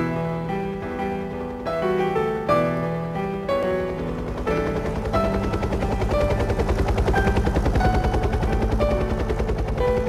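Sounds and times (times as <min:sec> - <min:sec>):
helicopter rotor chopping: 0:00.8 - 0:10.0.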